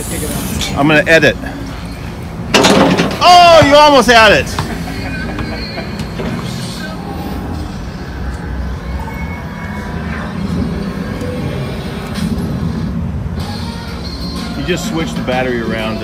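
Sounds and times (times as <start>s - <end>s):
trade show crowd rumble: 3.3s - 16.0s
music: 5.1s - 16.0s.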